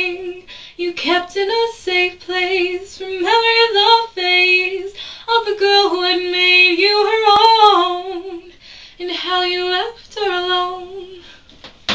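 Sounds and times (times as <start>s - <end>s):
woman singing unaccompanied: 0.0s - 11.4s
faint breath: 0.5s - 0.8s, 5.0s - 5.3s, 8.5s - 9.0s.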